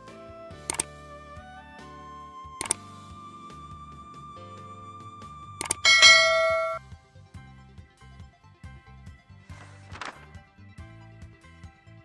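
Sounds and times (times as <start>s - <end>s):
soft background music: 0.0s - 12.0s
bell-like ding: 5.8s - 6.8s.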